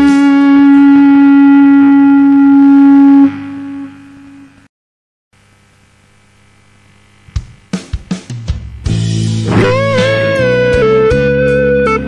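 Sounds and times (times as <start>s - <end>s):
electric guitar held note: 0.0s - 4.6s, 8.6s - 12.0s.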